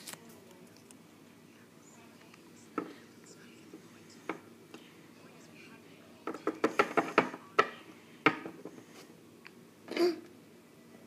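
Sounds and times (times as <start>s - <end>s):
plastic toy tapping on tile floor: 6.2s - 8.7s.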